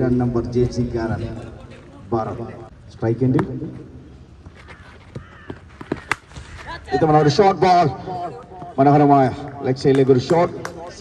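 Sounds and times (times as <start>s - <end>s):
cricket bat striking ball: 5.1s - 6.3s
man shouting excitedly: 6.7s - 9.0s.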